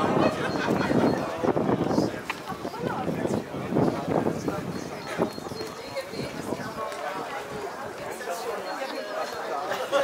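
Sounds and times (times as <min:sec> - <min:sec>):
people talking: 0:00.0 - 0:10.0
footsteps on cobblestones: 0:00.5 - 0:09.5.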